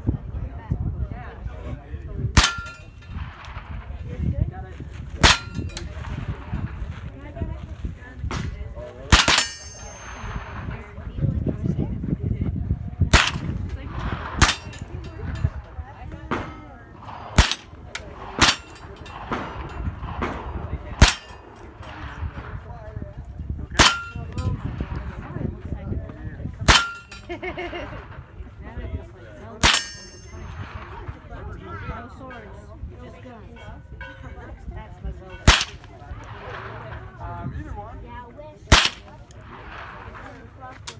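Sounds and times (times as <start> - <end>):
rifle shots: 2.4 - 4.2, 8.3 - 11.1, 13.1 - 22.9, 23.7 - 25.5, 29.6 - 31.2, 35.5 - 37.2, 38.7 - 40.5
metallic ring: 9.2 - 10.5, 26.7 - 27.3, 29.6 - 30.6.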